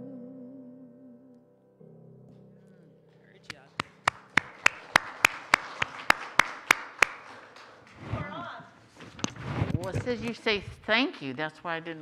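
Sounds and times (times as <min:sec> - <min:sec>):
faint crowd clapping: 0:03.4 - 0:08.6
hands clapping in rhythm: 0:03.5 - 0:08.0.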